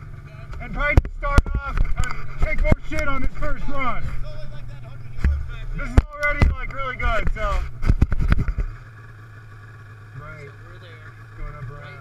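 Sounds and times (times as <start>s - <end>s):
snowmobile engine idling: 0.0s - 12.0s
people talking: 0.2s - 7.7s, 10.2s - 12.0s
sharp knocks and bumps: 0.6s - 4.2s, 5.1s - 8.8s.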